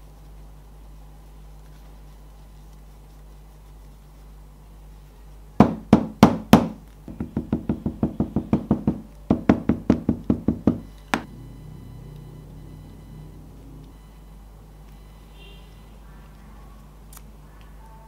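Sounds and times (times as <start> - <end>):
hammer tapping leather: 5.6 - 11.3.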